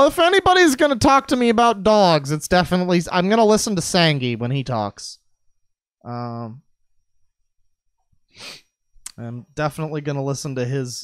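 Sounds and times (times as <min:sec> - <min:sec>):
man's sharp breath: 0:08.3 - 0:08.7.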